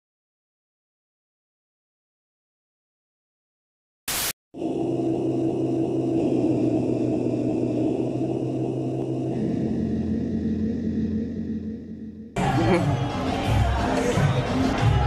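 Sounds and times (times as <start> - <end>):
ominous synthesized drone: 4.6 - 12.8.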